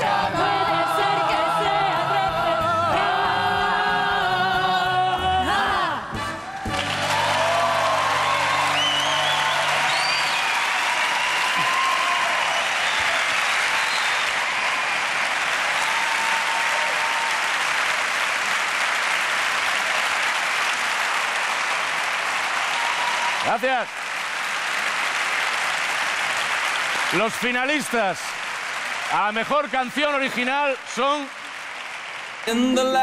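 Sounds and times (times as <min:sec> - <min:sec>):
audience applauding: 0:06.4 - 0:33.0
cheering shouts: 0:06.5 - 0:18.0, 0:22.5 - 0:23.8.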